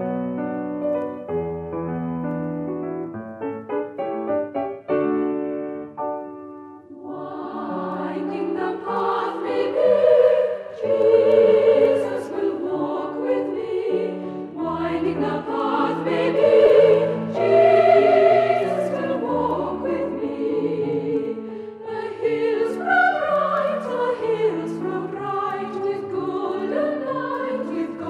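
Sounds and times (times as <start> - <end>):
mixed choir singing in parts: 6.9 - 28.0.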